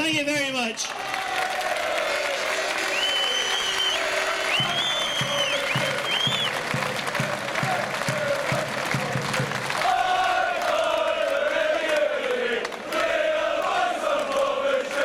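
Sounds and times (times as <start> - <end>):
crowd applauding and cheering: 0.6 - 15.0
high whistles: 2.8 - 6.6.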